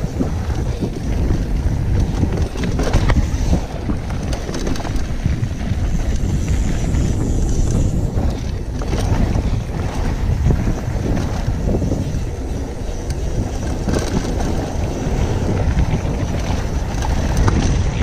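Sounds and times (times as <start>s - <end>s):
tyres rolling over dirt trail: 0.0s - 18.0s
wind buffeting microphone: 0.0s - 18.0s
bike knocking over bumps: 13.0s - 18.0s.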